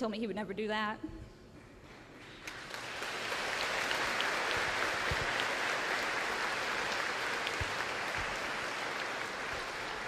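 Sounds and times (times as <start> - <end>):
audience applauding: 2.4 - 10.0.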